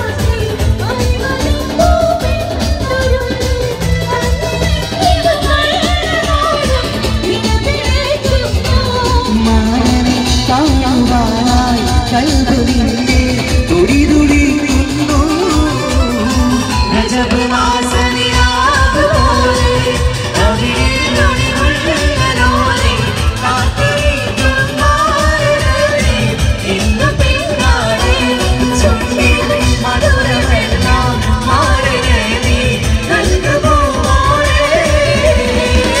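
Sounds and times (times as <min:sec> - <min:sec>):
melismatic singing voice: 0:00.0 - 0:36.0.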